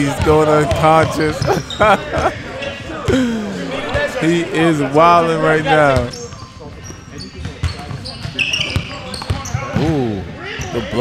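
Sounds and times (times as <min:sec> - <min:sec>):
sneaker squeak: 0:00.2 - 0:02.9, 0:05.5 - 0:11.0.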